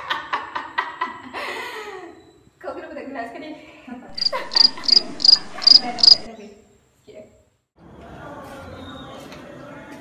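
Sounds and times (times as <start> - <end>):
cricket chirps: 4.1 - 6.3.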